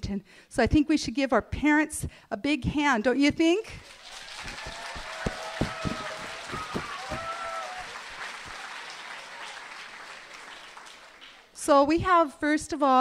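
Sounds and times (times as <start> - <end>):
audience applause: 3.8 - 11.6.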